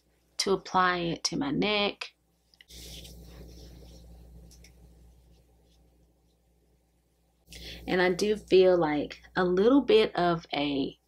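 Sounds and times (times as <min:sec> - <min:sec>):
low steady hum: 0:00.0 - 0:11.0
fingertips rubbing skin: 0:02.6 - 0:06.4.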